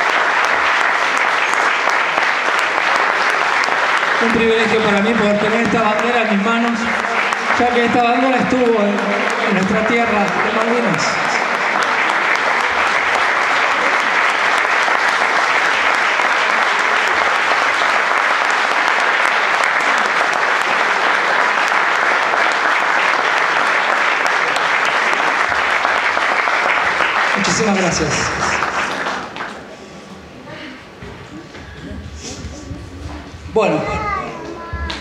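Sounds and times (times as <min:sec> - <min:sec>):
audience applauding: 0:00.0 - 0:30.2, 0:31.2 - 0:35.0
man talking: 0:04.2 - 0:11.6, 0:27.3 - 0:28.7, 0:33.5 - 0:34.6.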